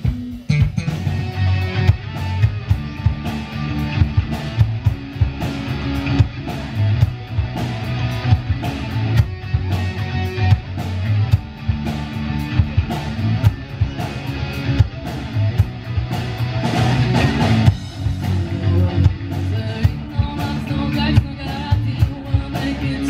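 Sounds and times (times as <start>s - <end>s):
electric guitar: 0.0s - 23.0s
live rock band: 0.0s - 23.0s
low bass line: 0.0s - 23.0s.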